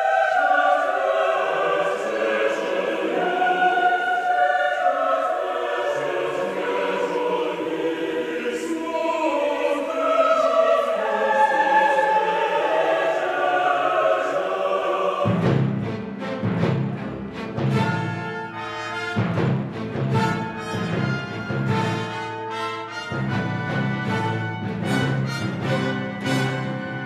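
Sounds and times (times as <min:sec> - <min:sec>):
choir singing held chords: 0:00.0 - 0:27.0.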